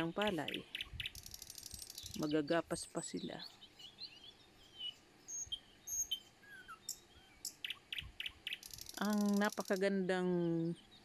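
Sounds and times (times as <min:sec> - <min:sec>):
faint outdoor hiss: 0:00.0 - 0:11.0
small birds chirping: 0:00.0 - 0:11.0.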